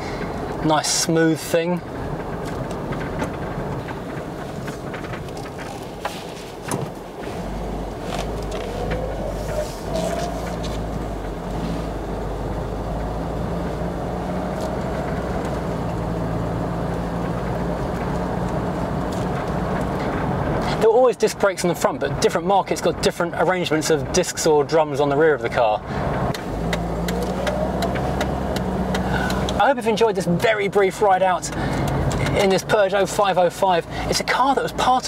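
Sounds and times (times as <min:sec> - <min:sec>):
deeper rumble: 0:00.0 - 0:20.8
car engine running: 0:00.0 - 0:35.0
road and tyre noise: 0:00.0 - 0:35.0.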